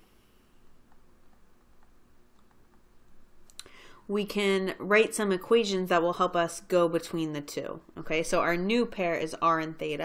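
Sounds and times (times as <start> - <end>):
breath in: 3.6 - 4.1.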